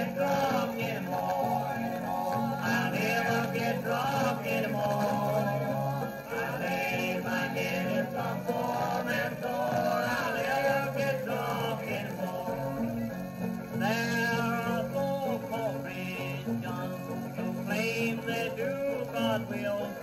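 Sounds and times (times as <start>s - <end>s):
old-time string band record: 0.0s - 20.0s.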